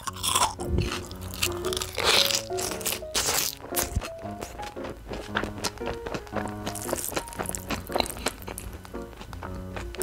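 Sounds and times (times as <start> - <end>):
crisp crunching bites: 0.0 - 10.0
light background music: 0.0 - 10.0.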